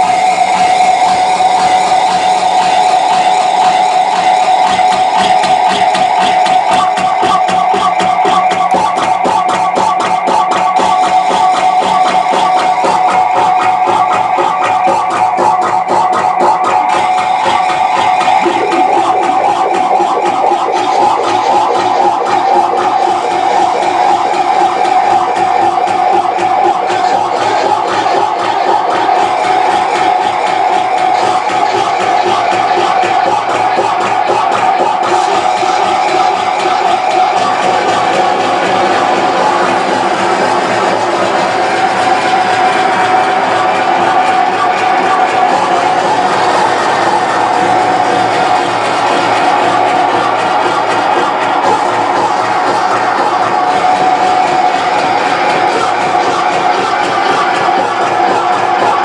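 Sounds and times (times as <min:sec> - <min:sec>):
harsh electronic noise: 0:00.0 - 0:59.0
held whining tone: 0:10.5 - 0:58.7.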